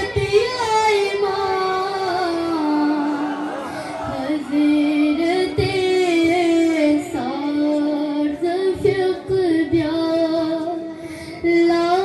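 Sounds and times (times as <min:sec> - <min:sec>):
boy singing a devotional hymn: 0:00.0 - 0:03.2, 0:04.1 - 0:12.0.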